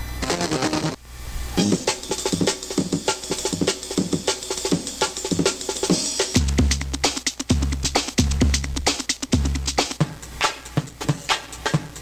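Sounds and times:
sampled drum-break loop: 0.2 - 1.0, 1.6 - 12.0
low bass notes: 6.4 - 9.8.

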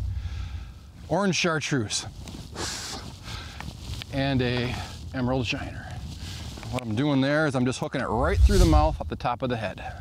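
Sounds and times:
soft rustle: 0.0 - 9.2
wind rumble on microphone: 8.0 - 9.3.

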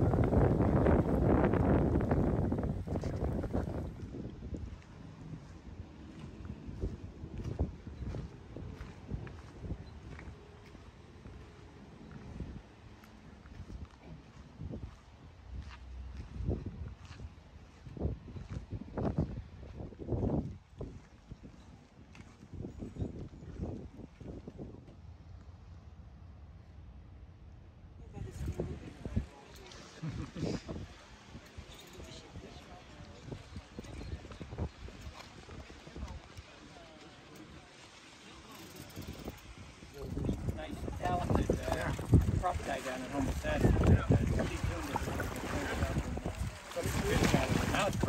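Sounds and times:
wind buffeting microphone: 0.0 - 25.0, 28.1 - 36.6, 38.8 - 48.0
footsteps on pavement: 6.1 - 11.4, 13.0 - 18.7.

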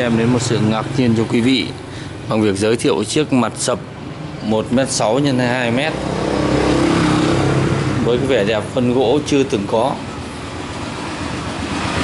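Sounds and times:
loud motor running: 5.0 - 12.0.

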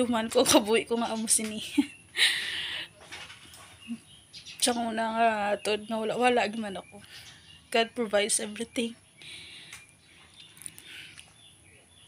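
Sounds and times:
woman's breathy laugh: 2.1 - 2.9.

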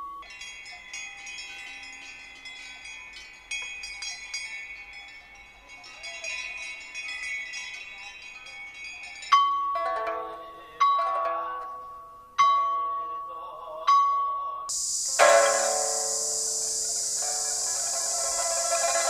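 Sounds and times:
tinkling chime-like tones: 0.0 - 11.2, 14.7 - 19.0.

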